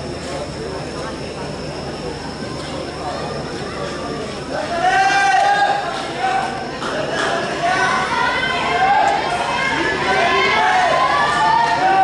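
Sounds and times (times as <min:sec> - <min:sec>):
steady high-pitched tone: 0:00.0 - 0:05.6
chatter of voices: 0:00.0 - 0:12.0
stadium background din: 0:00.0 - 0:12.0.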